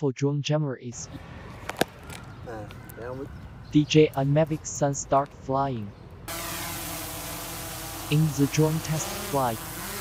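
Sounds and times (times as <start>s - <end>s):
drone propellers buzzing: 6.3s - 10.0s.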